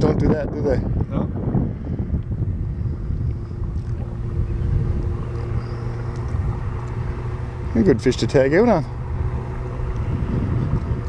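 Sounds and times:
low rumble: 0.0s - 11.0s
boat motor idling: 1.3s - 11.0s.

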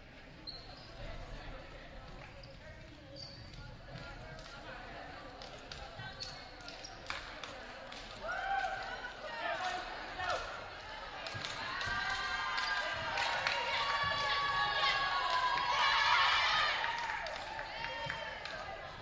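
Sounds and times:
girls shouting in a gymnasium: 8.2s - 19.0s.

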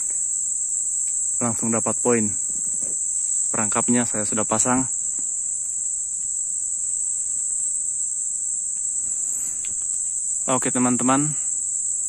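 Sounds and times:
insects droning: 0.0s - 12.0s.

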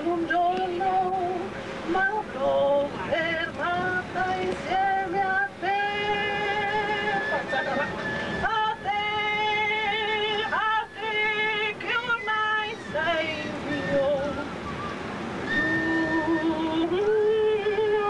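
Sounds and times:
person singing unaccompanied: 0.0s - 14.7s, 15.4s - 18.0s.

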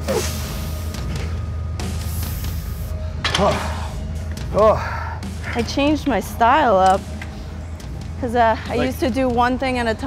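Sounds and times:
background music with low bass: 0.0s - 10.0s
heavy breathing: 2.0s - 5.6s.

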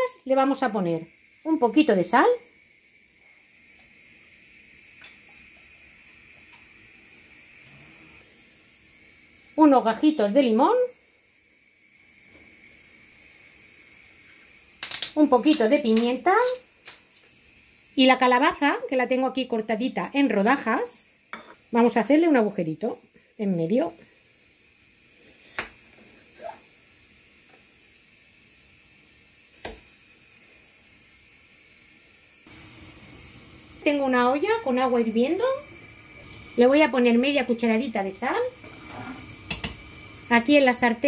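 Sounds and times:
background hiss: 0.0s - 41.0s
pot of water boiling: 0.0s - 41.0s
thin high whine: 32.5s - 41.0s.

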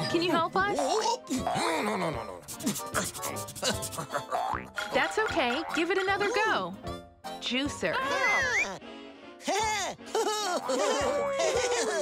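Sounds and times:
light music: 0.0s - 12.0s
eraser rubbing on paper: 2.4s - 4.1s.

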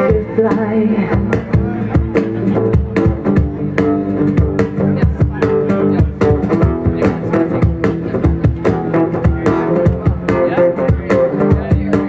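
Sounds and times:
bass notes: 0.0s - 12.0s
guitar chords: 0.0s - 12.0s
percussion beat: 0.0s - 12.0s.

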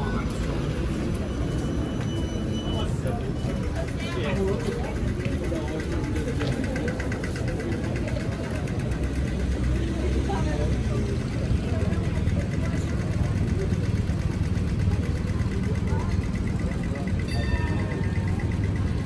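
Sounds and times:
crowd chatter: 0.0s - 19.0s
low traffic rumble: 0.0s - 19.0s
pedestrian crossing signal ticking: 0.1s - 10.0s, 10.7s - 19.0s.

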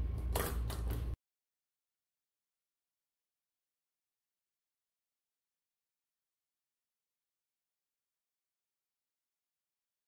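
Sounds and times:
steady low hum: 0.0s - 1.2s.

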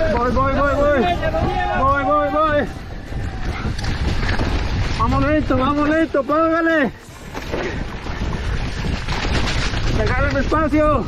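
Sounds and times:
mountain bike rolling on dirt: 0.0s - 11.0s
wind buffeting microphone: 0.0s - 11.0s.

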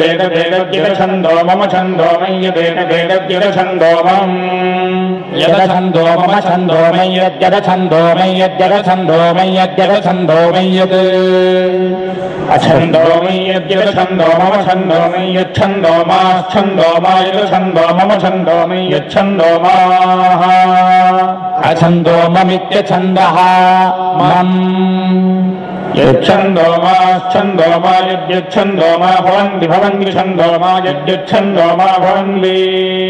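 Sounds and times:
man chanting long held note: 0.0s - 33.0s.

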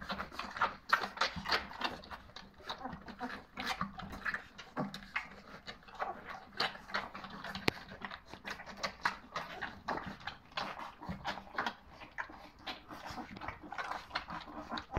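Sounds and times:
puppies lapping from metal dish: 0.0s - 14.9s.

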